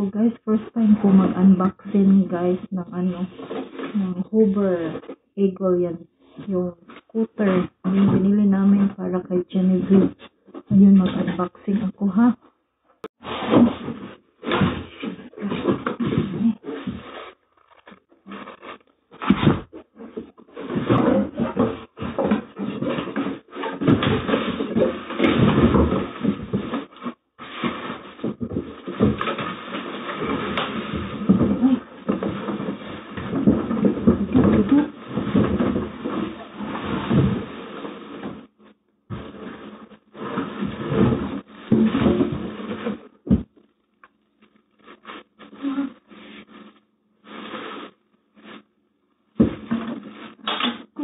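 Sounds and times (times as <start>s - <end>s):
cardboard and plastic rustling: 3.0s - 5.3s, 13.1s - 51.0s.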